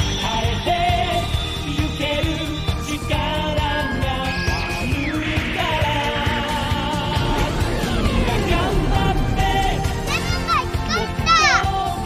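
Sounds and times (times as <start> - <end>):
background music: 0.0 - 12.0
boy shouting excitedly: 10.1 - 11.9.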